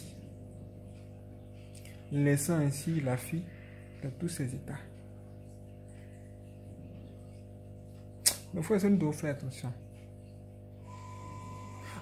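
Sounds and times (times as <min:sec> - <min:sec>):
low steady hum: 0:00.0 - 0:12.0
thin high tone: 0:10.8 - 0:12.0.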